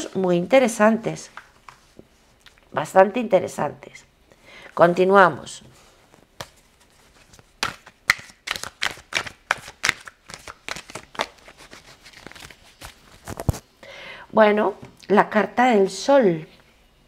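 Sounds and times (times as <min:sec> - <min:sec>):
cards being shuffled: 0:06.1 - 0:13.6.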